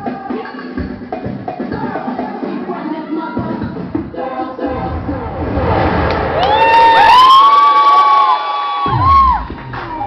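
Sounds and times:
dance music: 0.0s - 10.0s
audience screaming and cheering: 4.7s - 10.0s.

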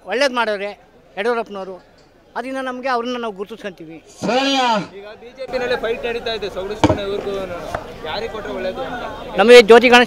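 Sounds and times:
sharp knock: 6.8s - 7.1s.

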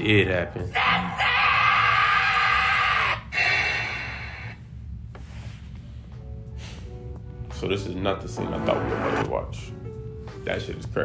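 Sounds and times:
young man screaming: 0.6s - 3.5s
dramatic music: 8.3s - 9.5s.

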